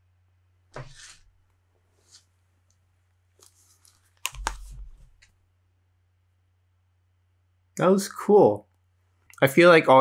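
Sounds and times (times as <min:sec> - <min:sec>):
headphones click: 0:03.4 - 0:05.3.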